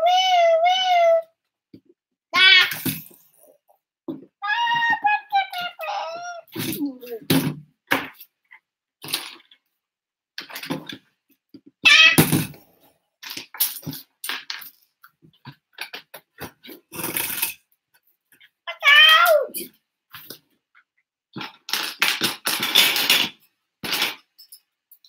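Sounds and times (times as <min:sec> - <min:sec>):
child's short voiced sound: 0:04.4 - 0:07.3, 0:18.7 - 0:19.7
plastic bricks clicking and clattering: 0:13.2 - 0:14.8, 0:21.4 - 0:24.7.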